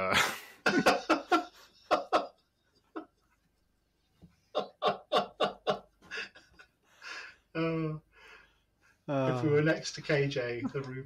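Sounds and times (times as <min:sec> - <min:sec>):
man laughing: 0:00.0 - 0:03.2, 0:04.5 - 0:06.7.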